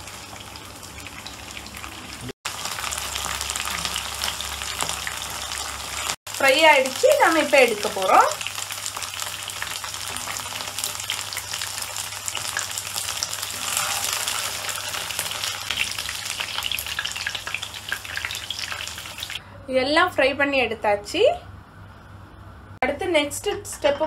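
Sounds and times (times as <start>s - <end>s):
chicken sizzling in hot oil: 0.0s - 19.4s.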